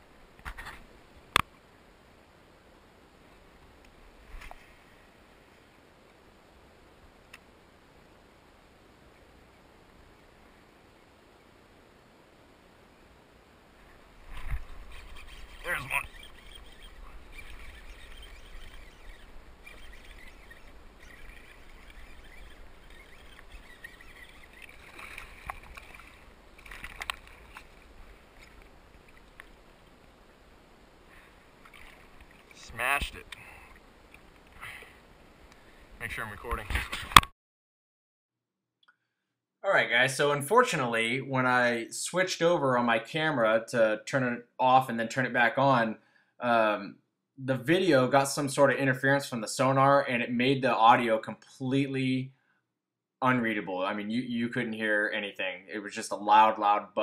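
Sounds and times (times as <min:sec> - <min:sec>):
still water ambience: 0:00.0 - 0:37.2
knocks and clatters in kayak: 0:24.1 - 0:29.6.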